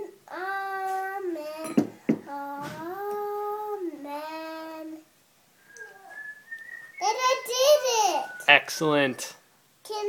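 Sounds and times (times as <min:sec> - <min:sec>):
faint high whistle: 0:05.6 - 0:09.4.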